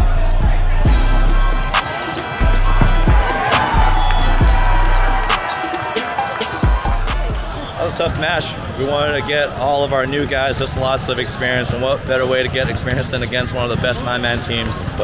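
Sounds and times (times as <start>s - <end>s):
music with deep bass line: 0.0s - 1.8s, 2.4s - 5.5s, 6.6s - 7.6s
voices calling: 0.8s - 12.5s
shoes on court: 1.8s - 4.6s
volleyball hits: 1.8s - 5.5s.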